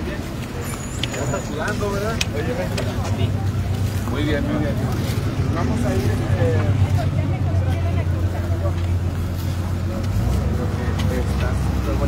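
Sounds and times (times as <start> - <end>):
heavy vehicle engine rumbling: 0.0 - 12.0
people chatting: 0.0 - 12.0.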